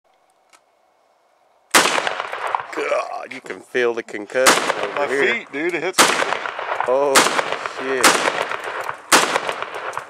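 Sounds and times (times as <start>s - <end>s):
loud gunshot with echo: 1.7s - 2.7s, 4.4s - 5.0s, 6.0s - 10.0s.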